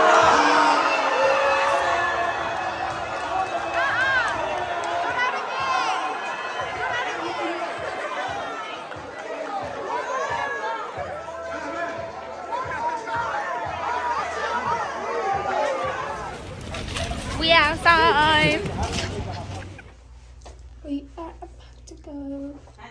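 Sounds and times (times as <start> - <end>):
crowd talking and shouting: 0.0 - 20.0.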